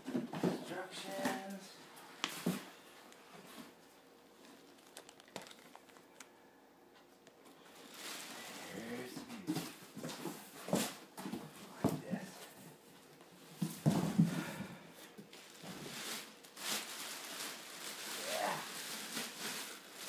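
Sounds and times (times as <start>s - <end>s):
plastic bag rustling: 4.4s - 6.3s, 7.6s - 9.0s, 15.2s - 20.0s
short voice-like sounds: 18.2s - 18.7s.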